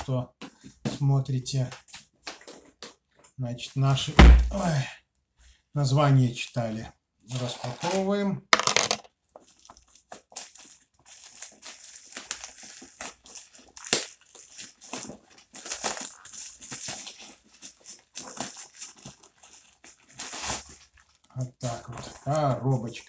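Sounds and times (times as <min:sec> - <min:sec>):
plastic bag tearing and crinkling: 0:09.4 - 0:23.0.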